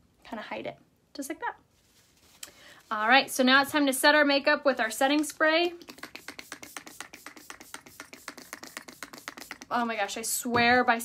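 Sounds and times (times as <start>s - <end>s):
spray bottle spritzes: 5.8s - 9.7s.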